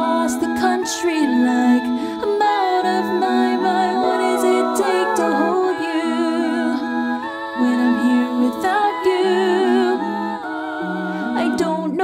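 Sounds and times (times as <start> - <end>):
woman singing a cappella harmonies: 0.0 - 12.0.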